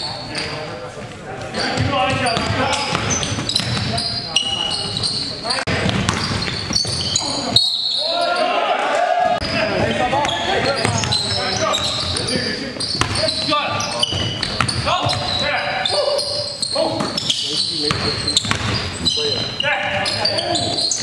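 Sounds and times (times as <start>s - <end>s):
players' voices: 0.0s - 21.0s
basketball bouncing on hardwood floor: 5.7s - 7.1s, 14.1s - 15.4s, 17.9s - 19.0s.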